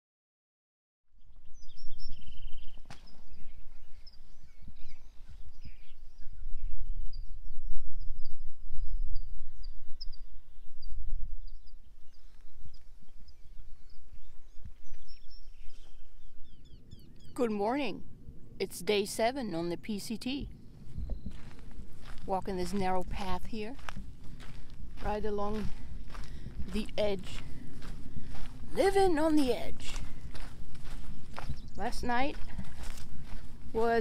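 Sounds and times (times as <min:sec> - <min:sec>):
small birds chirping: 0:01.2 - 0:18.0, 0:18.6 - 0:34.0
wind rumble on microphone: 0:01.2 - 0:18.7, 0:19.5 - 0:34.0.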